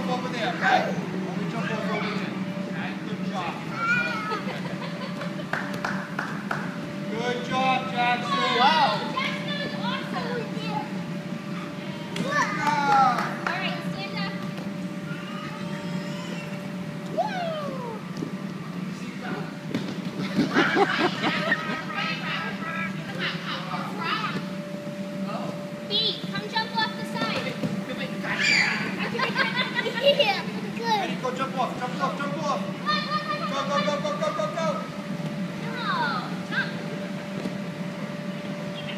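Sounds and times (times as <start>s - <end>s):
steady low hum: 0.0s - 38.9s
children calling out and shouting: 3.7s - 4.5s, 15.0s - 18.1s, 28.3s - 29.0s, 32.8s - 34.0s.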